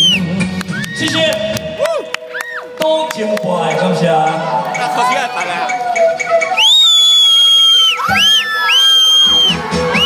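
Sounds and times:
live concert music: 0.0 - 10.0
crowd cheering: 4.4 - 10.0
long high sliding whistles: 6.6 - 10.0.

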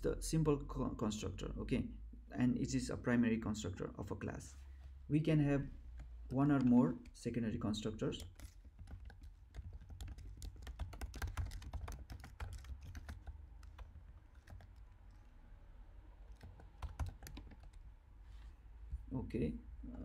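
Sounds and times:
computer keyboard typing: 5.8 - 15.3, 16.2 - 17.9.

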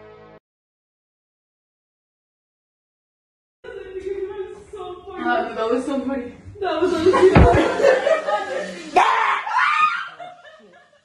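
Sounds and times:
person laughing: 7.0 - 8.8.

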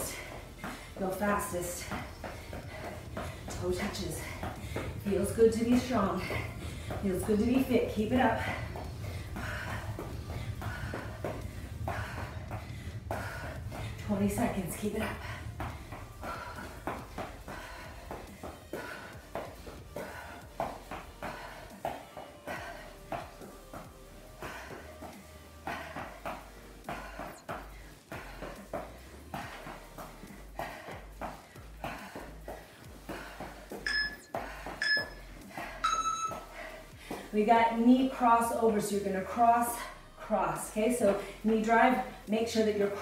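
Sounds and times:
trainers stepping on gym floor: 0.0 - 39.4
short electronic timer beeps: 33.9 - 34.2, 35.8 - 36.4.

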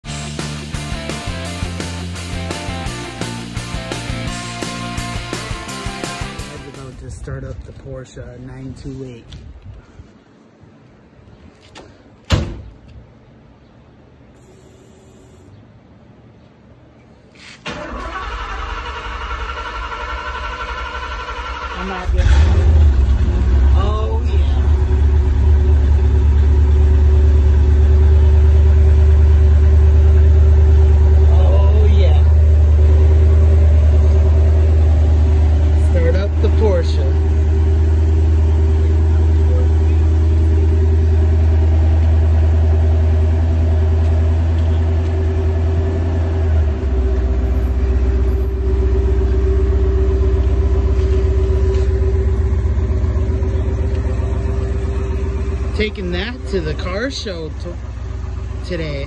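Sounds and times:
car engine idling deep rumble: 19.9 - 59.0.

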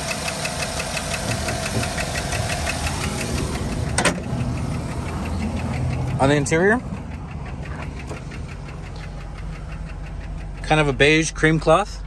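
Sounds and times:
engine idling: 0.0 - 12.0
fast even ticking: 0.0 - 12.0.

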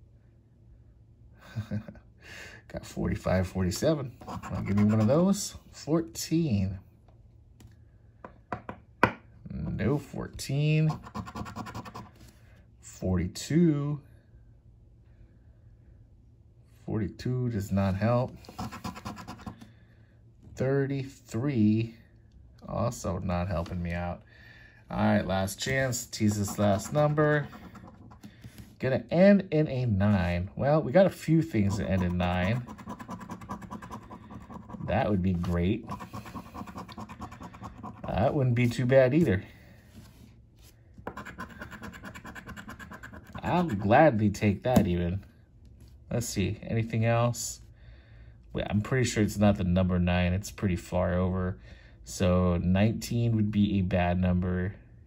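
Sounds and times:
coin scratching lottery ticket: 3.7 - 5.2, 10.9 - 12.1, 18.4 - 19.6, 26.0 - 28.3, 31.5 - 38.4, 41.1 - 43.9.

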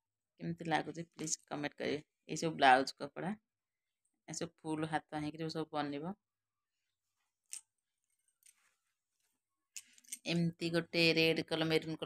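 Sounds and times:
woman speaking: 0.4 - 3.4, 4.3 - 6.2, 10.3 - 12.0.

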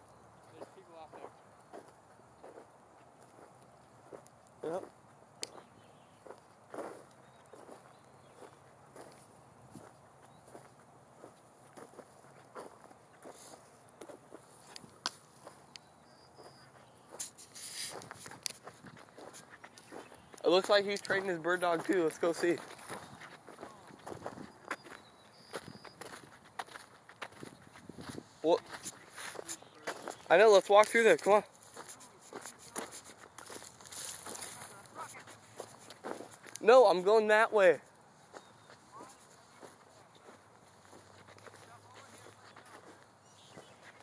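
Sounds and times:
footsteps on dry grass: 0.1 - 44.0
faint voices: 19.8 - 24.2, 33.9 - 35.6, 38.8 - 44.0.

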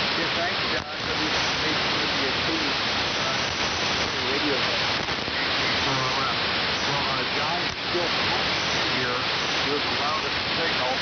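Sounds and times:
radio static hiss: 0.0 - 11.0
weak garbled radio voice: 0.0 - 11.0.

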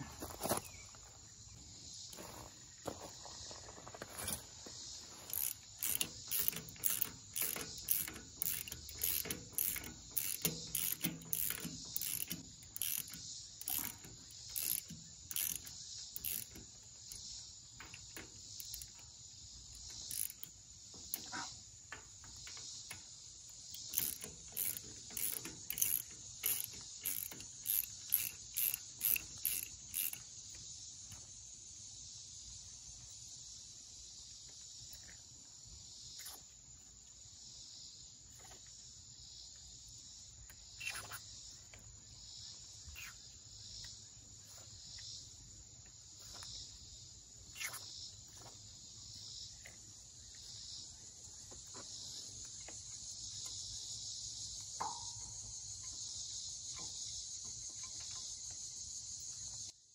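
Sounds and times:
crickets chirping: 0.0 - 59.9
ratchet wrench clicking: 5.2 - 19.0, 19.7 - 21.3, 23.5 - 30.7.

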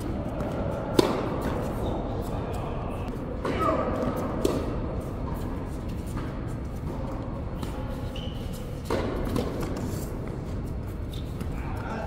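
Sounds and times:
racket striking ball: 0.0 - 1.8, 3.3 - 4.9, 8.8 - 10.2
indoor hall hum: 0.0 - 12.0
shoe squeak: 7.6 - 8.9.

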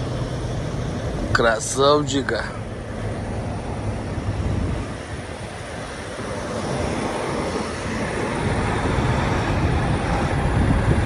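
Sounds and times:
diesel truck engines rumbling: 0.0 - 11.0.

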